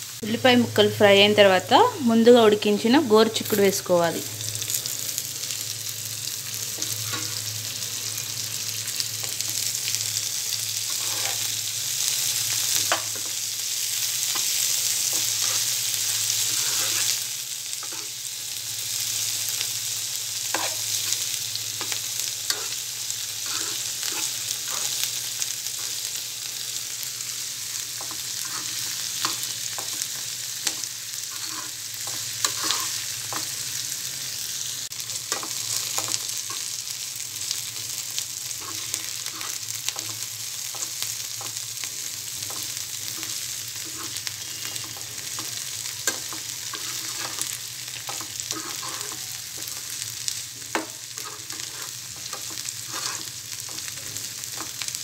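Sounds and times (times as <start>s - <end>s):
beans sizzling in hot oil: 0.0s - 55.0s.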